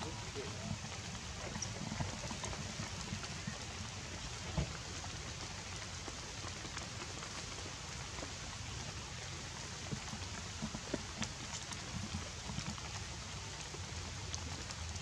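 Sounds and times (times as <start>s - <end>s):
rain falling on foliage: 0.0s - 15.0s.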